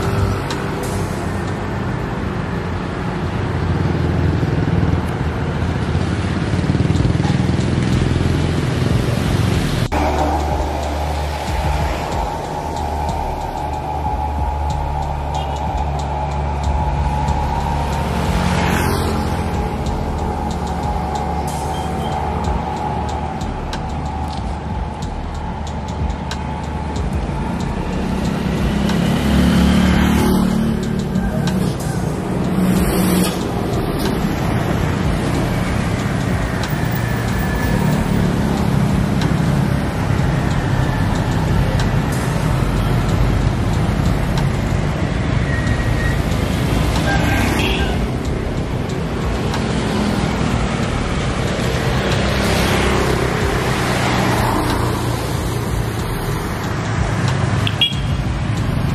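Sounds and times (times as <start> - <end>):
vehicles passing on wet road: 0.0 - 58.9.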